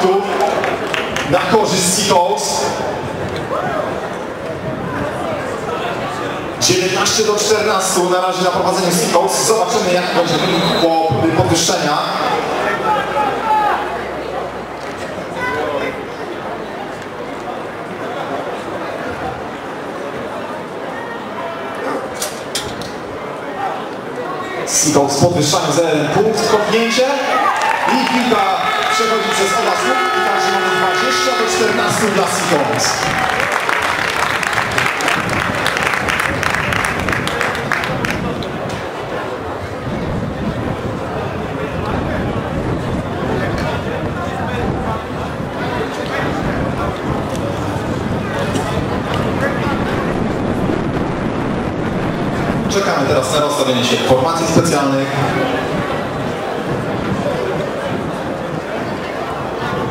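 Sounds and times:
people talking and calling: 0:00.0 - 0:59.9
wind rumbling on microphone: 0:00.5 - 0:06.6, 0:31.9 - 0:59.9.

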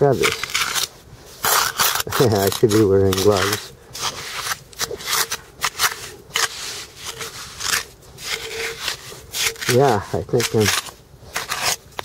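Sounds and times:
hands digging through wet seaweed gravel: 0:00.0 - 0:11.8.

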